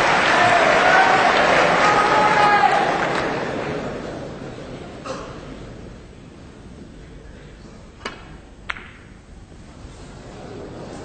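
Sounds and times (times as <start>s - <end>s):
quiet hush of hall: 3.0s - 11.0s.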